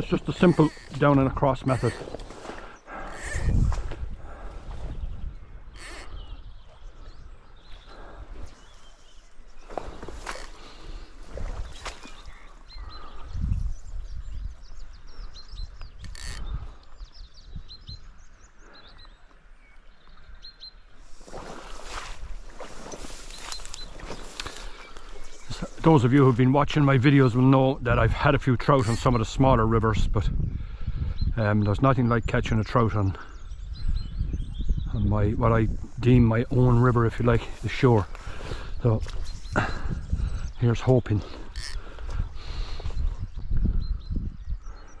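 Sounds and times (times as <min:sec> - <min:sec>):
small birds chirping: 0:00.0 - 0:45.0
wind rumbling on microphone: 0:00.0 - 0:45.0
flowing river water: 0:20.9 - 0:25.8.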